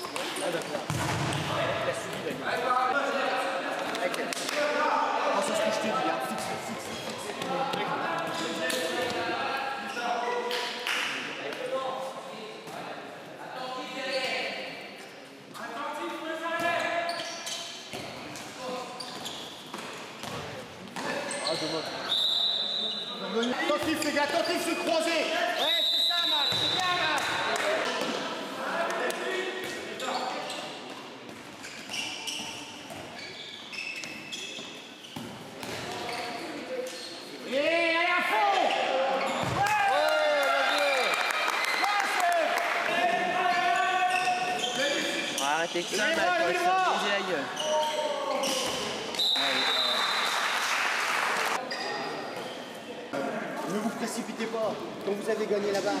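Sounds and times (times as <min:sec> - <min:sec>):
players calling and shouting: 0:15.6 - 0:30.9, 0:35.6 - 0:50.2
high whistle tones: 0:22.0 - 0:23.3, 0:25.6 - 0:26.8, 0:49.2 - 0:50.4.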